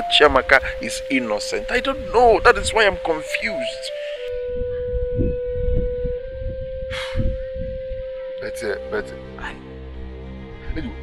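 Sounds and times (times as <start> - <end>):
low pulsing beat: 0.0 - 11.0
sustained wind-like note: 0.0 - 11.0.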